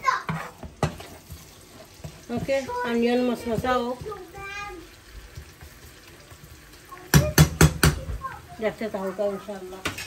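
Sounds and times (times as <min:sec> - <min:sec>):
metal spoon knocking on frying pan: 0:07.1 - 0:08.2.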